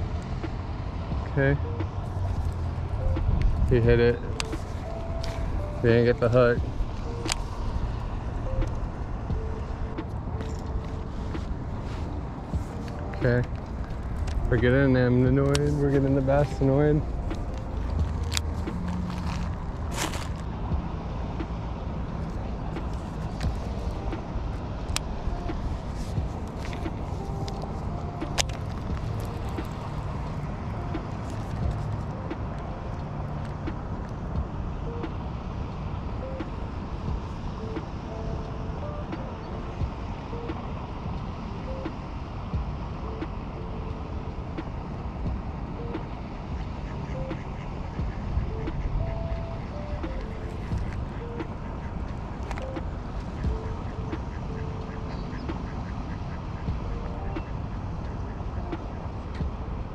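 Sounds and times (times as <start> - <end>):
low outdoor rumble: 0.0 - 59.9.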